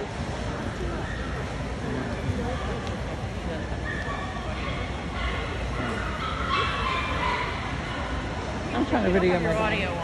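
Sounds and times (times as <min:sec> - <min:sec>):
crowd chatter: 0:00.0 - 0:10.0
dogs yipping and barking: 0:03.8 - 0:08.4.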